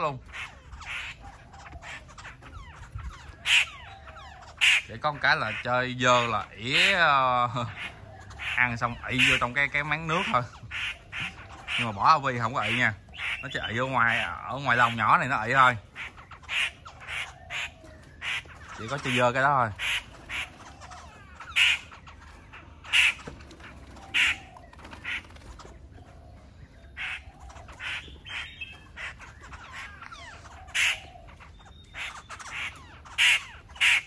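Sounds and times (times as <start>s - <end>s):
birds whistling: 0.0s - 34.0s
harsh bird squawks: 0.0s - 34.0s.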